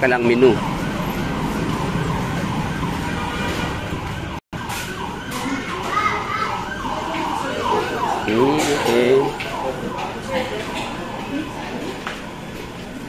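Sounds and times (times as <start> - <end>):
restaurant background noise: 0.0 - 13.0.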